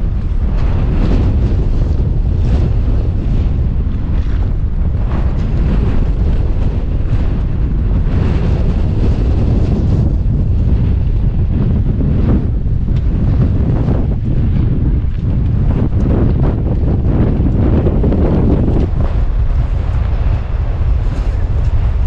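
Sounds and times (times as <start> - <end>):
strong wind on microphone: 0.0 - 22.0.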